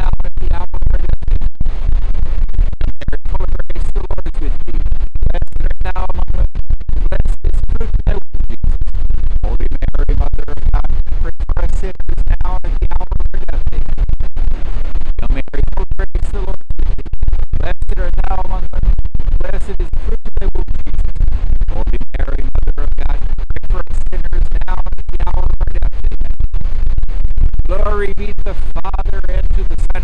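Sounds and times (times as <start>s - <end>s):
wind buffeting microphone: 0.0s - 30.0s
man speaking: 3.0s - 4.6s, 7.1s - 8.2s, 9.4s - 13.8s, 15.2s - 16.6s, 17.6s - 18.8s, 19.4s - 20.7s, 21.7s - 26.0s, 27.7s - 30.0s.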